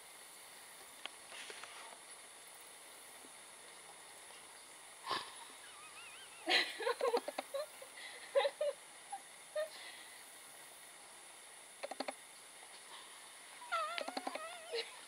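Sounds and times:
young woman laughing: 5.1s - 9.8s, 13.7s - 15.0s.

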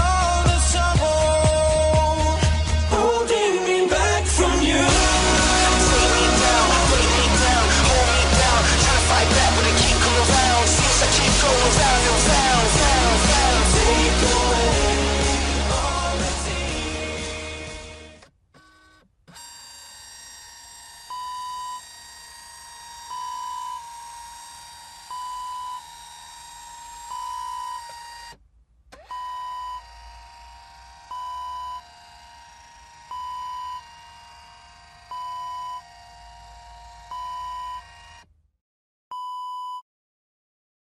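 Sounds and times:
electronic drone with high hiss: 4.6s - 18.2s
electronic beeps: 25.1s - 25.8s, 31.1s - 31.8s, 33.1s - 33.9s, 35.1s - 35.9s, 37.1s - 37.9s.

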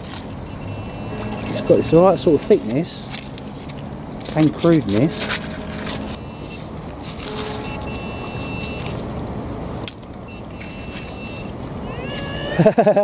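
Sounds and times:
city traffic noise: 0.0s - 13.0s
pinpointer high tone: 0.5s - 2.7s, 4.9s - 8.9s.

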